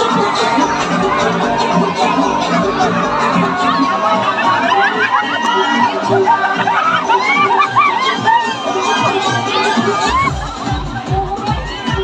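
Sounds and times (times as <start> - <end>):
crowd shouting and whooping: 0.0 - 12.0
dance music: 0.0 - 12.0
heavy bass beat: 0.0 - 12.0.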